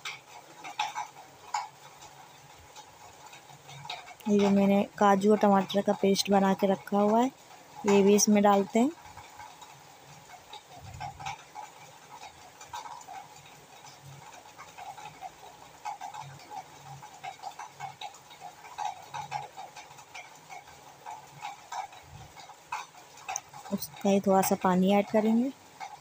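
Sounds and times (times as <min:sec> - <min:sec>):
sauce bubbling and popping: 0:00.1 - 0:26.0.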